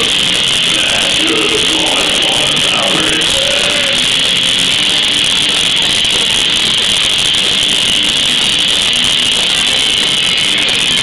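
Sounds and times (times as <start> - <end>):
bass guitar: 0.0 - 11.0
drums: 0.0 - 11.0
overdriven electric guitars: 0.0 - 11.0.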